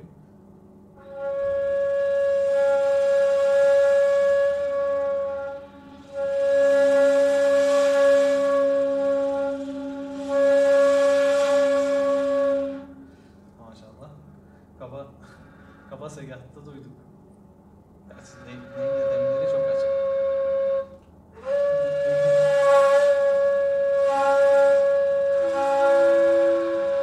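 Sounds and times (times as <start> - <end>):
second flute low steady tone: 1.0 - 13.3, 18.2 - 27.0
breathy reed flute note: 1.0 - 13.5, 18.2 - 27.0.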